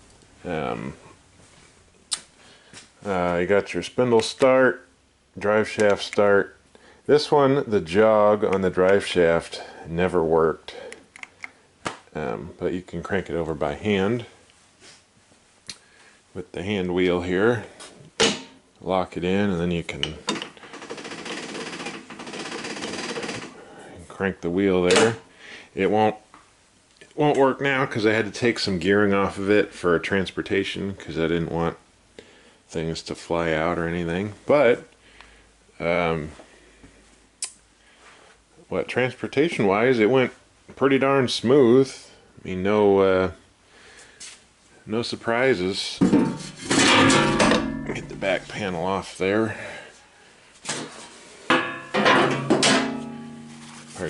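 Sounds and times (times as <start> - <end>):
metal panel clattering and rattling: 46.0 - 48.3, 50.7 - 54.0.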